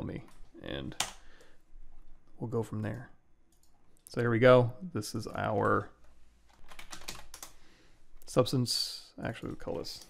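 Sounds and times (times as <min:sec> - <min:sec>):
keyboard typing: 0:06.5 - 0:07.6.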